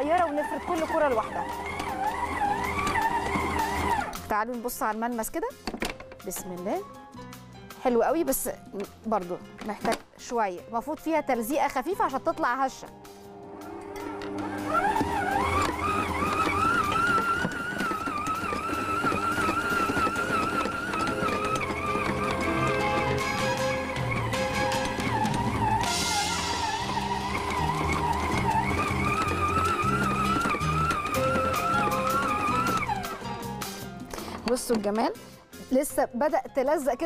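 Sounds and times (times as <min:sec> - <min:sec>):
stand mixer motor whine: 0:00.0 - 0:04.2, 0:12.9 - 0:34.5
background music: 0:00.0 - 0:37.0.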